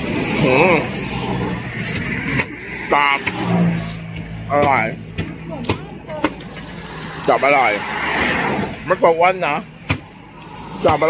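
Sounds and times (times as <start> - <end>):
pickup truck driving past: 0.0 - 11.0.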